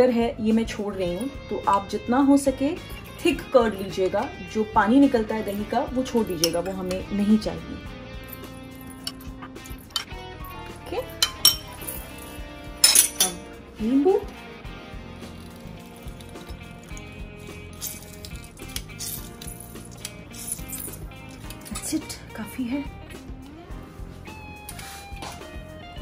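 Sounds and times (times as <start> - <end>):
soft background music: 0.0 - 26.0
metal utensils clinking on ceramic bowls: 5.5 - 7.2, 8.4 - 10.2, 10.9 - 13.5, 17.7 - 22.2.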